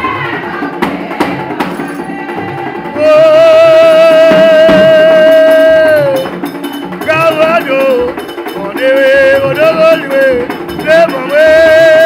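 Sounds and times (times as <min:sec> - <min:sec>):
person singing: 0:00.0 - 0:06.4, 0:07.0 - 0:12.0
hand drums: 0:00.0 - 0:12.0.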